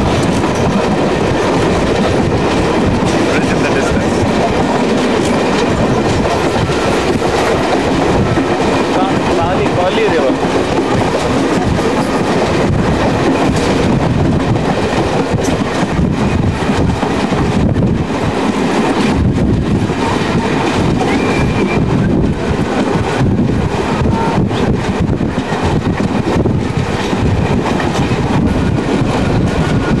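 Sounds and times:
train rumble and rattle: 0.0 - 30.0
wheels clicking over rails: 0.0 - 30.0.

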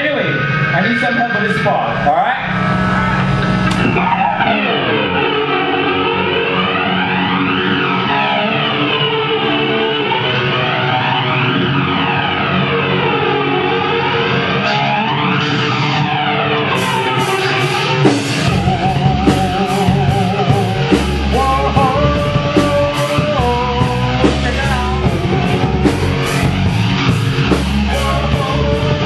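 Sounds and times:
electric guitar and bass chords: 0.0 - 29.0.

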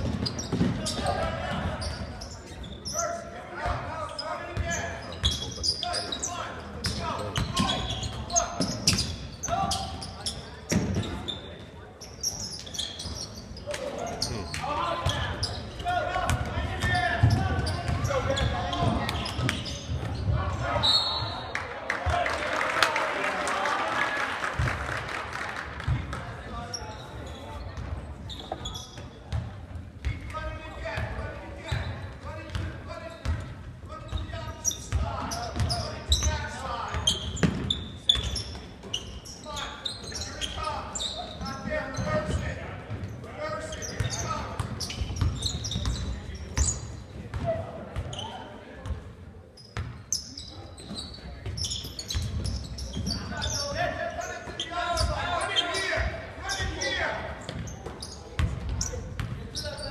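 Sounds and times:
sneaker squeaks: 0.0 - 21.6, 26.5 - 59.9
echoing voices in hall: 13.2 - 28.2.

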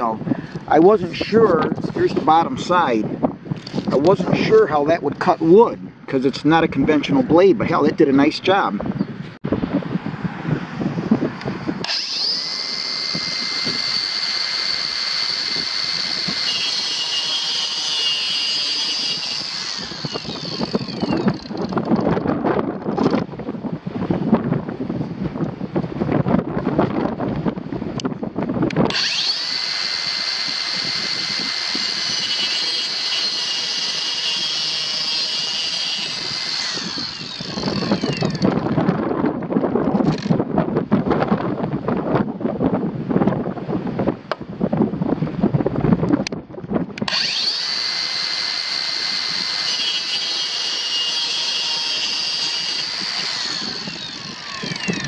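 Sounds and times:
wind rumbling on microphone: 0.0 - 50.1, 51.3 - 55.0
circular saw cutting wood: 11.8 - 22.0, 28.9 - 38.8, 47.1 - 55.0.

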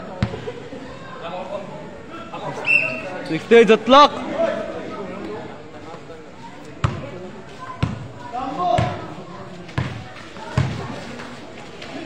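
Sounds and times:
players' voices: 0.0 - 12.0
basketball bouncing on court: 6.8 - 7.1, 7.8 - 8.1, 8.7 - 9.0, 9.7 - 10.9.

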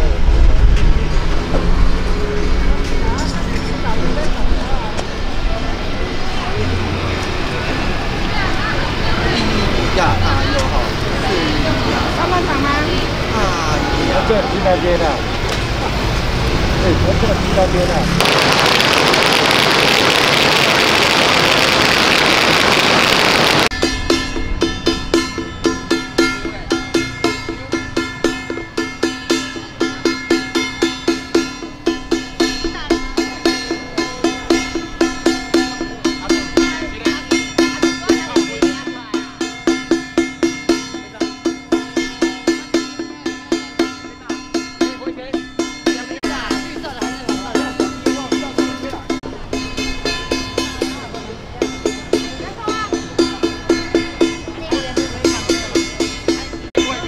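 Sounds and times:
voices talking: 0.0 - 23.8, 24.4 - 57.0
loud even rushing noise: 16.2 - 23.8
brass gong ringing: 18.2 - 24.5.

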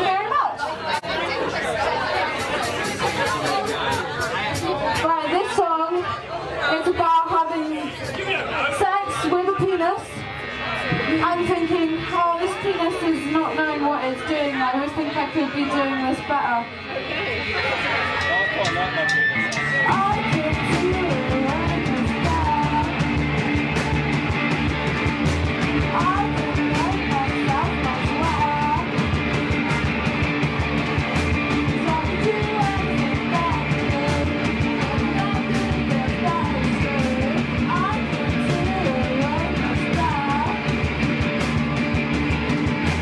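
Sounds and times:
drums: 0.0 - 43.0
electric guitars: 7.8 - 43.0
woman singing into a microphone: 19.9 - 23.0, 25.9 - 28.9, 31.7 - 40.7.

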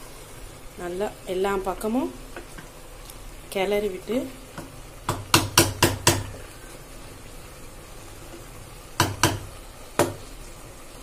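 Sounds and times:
spatula knocking on cooking pot: 4.6 - 6.4, 9.0 - 10.2.

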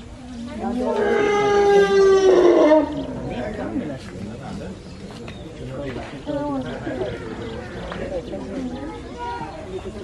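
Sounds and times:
quiet voices: 0.0 - 10.0
elephant calf squealing: 0.7 - 3.2.

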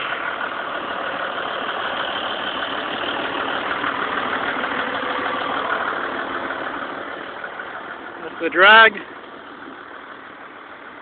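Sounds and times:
tractor engine idling: 0.0 - 11.0.

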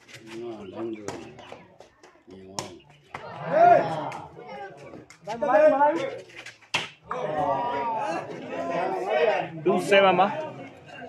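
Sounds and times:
spectators' voices: 0.0 - 11.0
loud shout: 3.2 - 4.3.

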